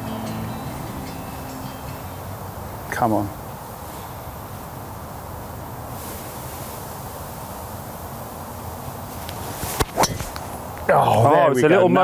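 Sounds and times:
outdoor hiss: 0:00.0 - 0:12.0
golf club striking ball: 0:09.7 - 0:10.5.

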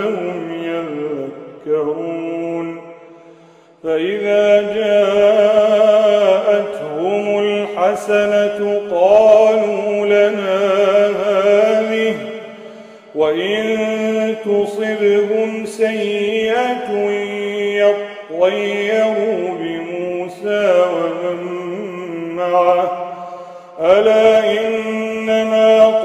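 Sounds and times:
man reciting melodically: 0:00.0 - 0:03.2, 0:03.8 - 0:26.0.

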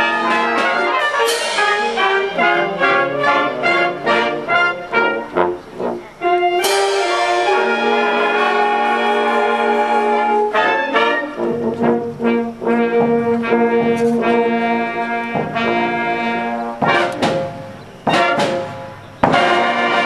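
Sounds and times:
concert band playing a march: 0:00.0 - 0:20.0.

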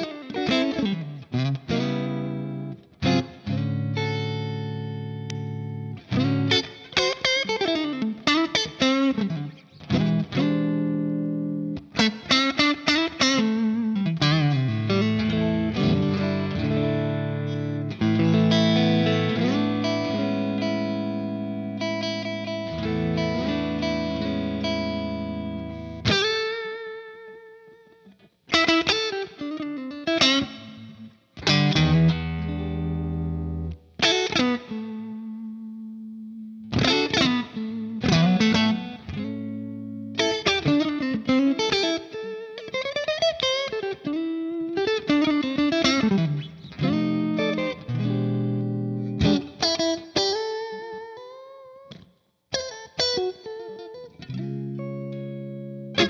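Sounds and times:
electric guitar playing: 0:00.0 - 0:56.0.

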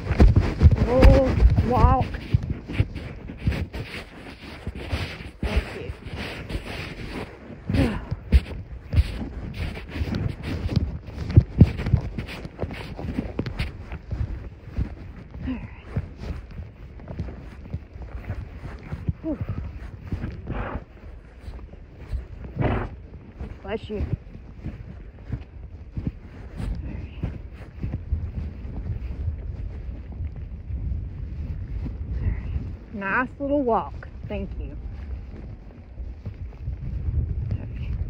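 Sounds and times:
clothing rubbing on microphone: 0:00.0 - 0:38.0
horse hoofbeats on dirt: 0:00.0 - 0:38.0.

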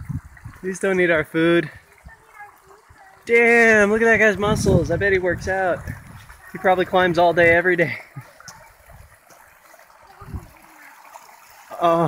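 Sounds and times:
creek water trickling: 0:00.0 - 0:12.0.

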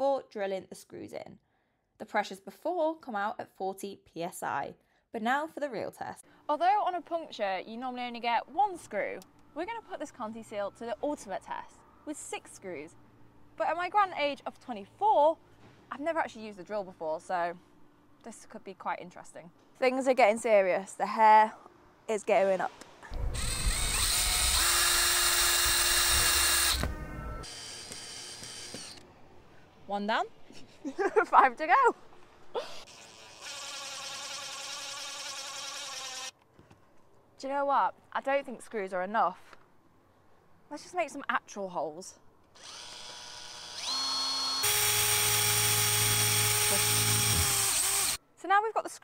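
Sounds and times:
cordless drill whining: 0:23.1 - 0:29.0, 0:32.8 - 0:36.3, 0:42.6 - 0:48.2.

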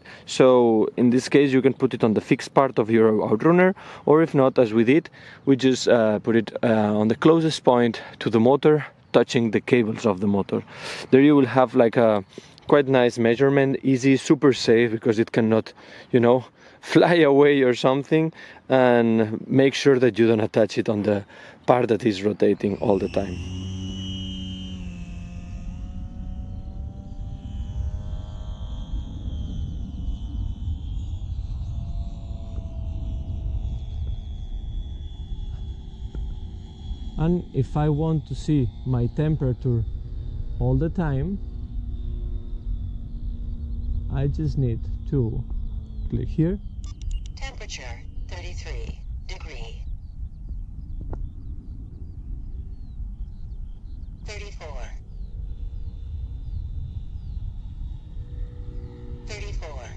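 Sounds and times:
electric propeller whining: 0:00.0 - 0:59.9
steady low rumble: 0:00.0 - 0:59.9
small birds chirping: 0:02.6 - 0:13.7, 0:20.8 - 0:25.0, 0:42.3 - 0:59.9
sharp click: 0:46.8 - 0:47.4.

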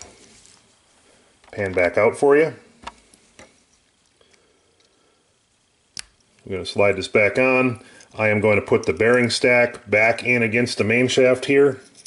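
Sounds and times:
handling small metal parts: 0:11.7 - 0:12.0.

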